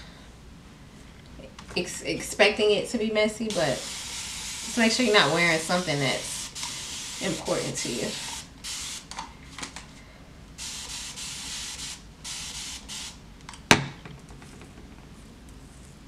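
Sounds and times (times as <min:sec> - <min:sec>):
spray bottle hissing: 0:03.5 - 0:09.1, 0:10.6 - 0:13.2.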